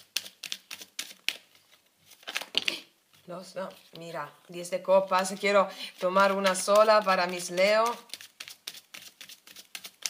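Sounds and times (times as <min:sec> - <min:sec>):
cards being shuffled by hand: 0:00.0 - 0:04.0, 0:05.0 - 0:10.0.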